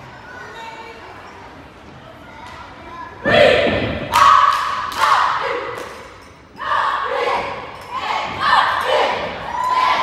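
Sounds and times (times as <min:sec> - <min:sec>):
cheerleaders shouting in unison: 0:06.6 - 0:10.0.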